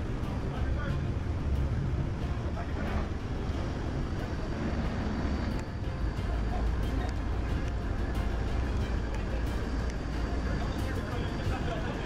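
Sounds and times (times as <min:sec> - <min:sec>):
boat engines rumbling: 0:00.0 - 0:12.0
faint voices: 0:00.0 - 0:12.0.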